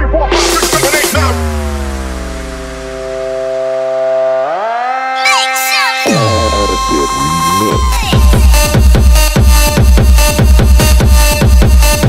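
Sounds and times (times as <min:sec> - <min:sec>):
bass: 0:00.0 - 0:05.0, 0:06.0 - 0:12.0
held synthesizer note: 0:00.2 - 0:08.8.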